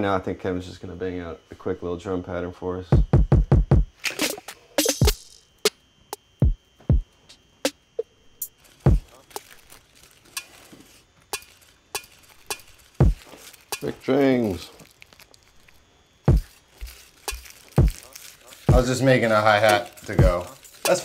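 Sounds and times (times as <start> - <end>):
electronic kick drum thuds: 3.0 - 4.0, 4.8 - 5.8, 6.4 - 7.8, 8.9 - 9.1, 13.0 - 13.2, 16.3 - 18.0, 18.7 - 19.0, 20.2 - 21.0
electronic snare and hat clicks: 3.0 - 7.8, 12.5 - 13.2, 18.7 - 19.0.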